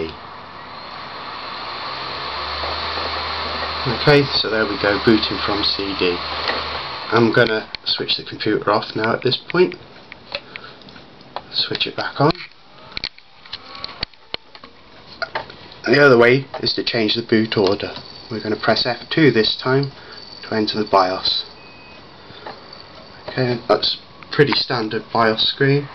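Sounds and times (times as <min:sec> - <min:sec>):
low hum: 0:00.0 - 0:07.9
optical drive whirring: 0:00.0 - 0:07.9, 0:12.5 - 0:15.8, 0:17.6 - 0:25.9
faint rising whine: 0:00.0 - 0:08.9, 0:15.8 - 0:25.9.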